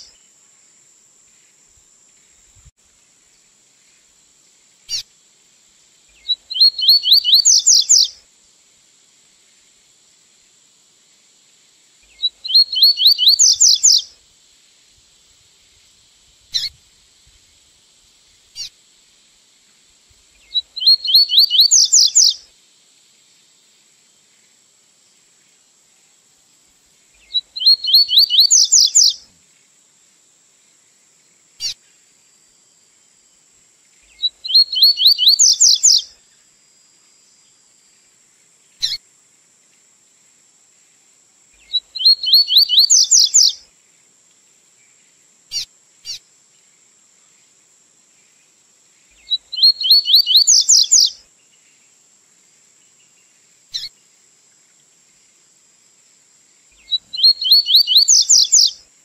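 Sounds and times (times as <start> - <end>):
faint high hiss: 0.0 - 59.0
bird song of rising notes: 6.2 - 8.1, 12.2 - 14.0, 20.4 - 22.4, 27.2 - 29.2, 34.1 - 36.0, 41.6 - 43.6, 49.2 - 51.1, 56.8 - 58.7.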